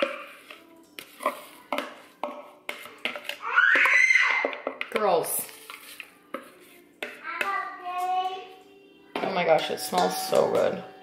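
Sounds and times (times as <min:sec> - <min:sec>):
spoon knocking on metal bowl: 0:09.1 - 0:10.8
metal bowl ringing: 0:09.2 - 0:10.9.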